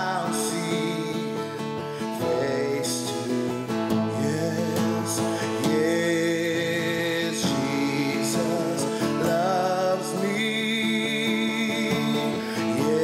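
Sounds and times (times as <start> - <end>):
acoustic guitar strumming: 0.0 - 13.0
man singing: 0.0 - 13.0.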